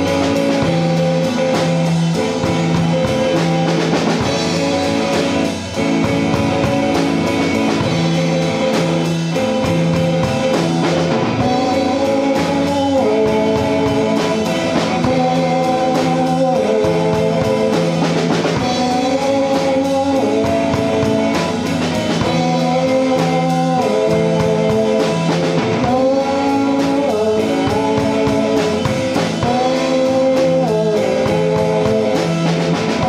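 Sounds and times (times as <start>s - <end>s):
rock band playing live: 0.0s - 33.0s
woman singing: 11.4s - 33.0s.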